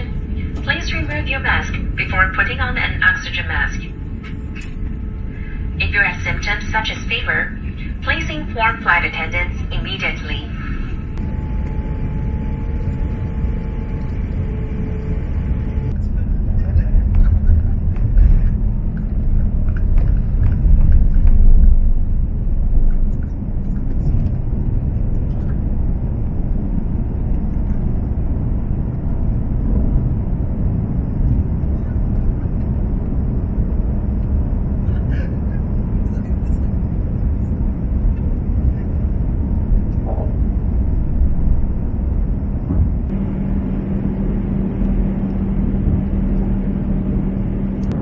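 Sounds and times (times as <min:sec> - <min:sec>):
jet engines roaring: 0:00.0 - 0:48.0
wheels rumbling on runway: 0:00.0 - 0:48.0.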